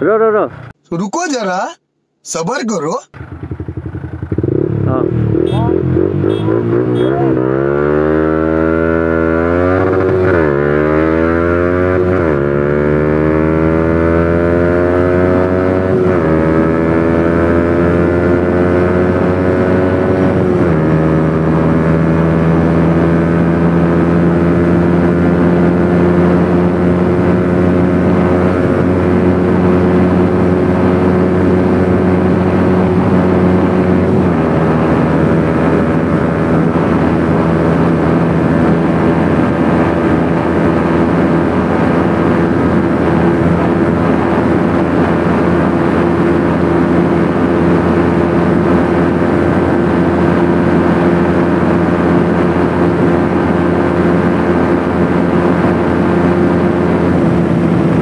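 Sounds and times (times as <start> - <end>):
motorcycle engine accelerating: 3.0 - 58.0.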